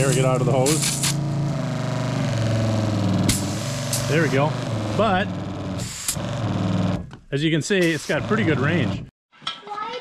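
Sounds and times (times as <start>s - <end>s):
electric water pump humming: 0.0s - 7.2s.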